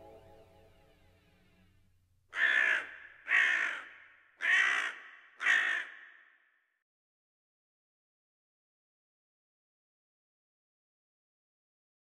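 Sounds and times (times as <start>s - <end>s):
crow cawing: 2.3s - 6.6s.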